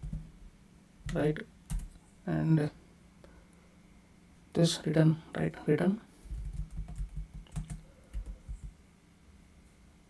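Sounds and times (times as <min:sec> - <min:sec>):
typing on keyboard: 0:00.0 - 0:00.2, 0:01.1 - 0:01.9, 0:06.3 - 0:08.8.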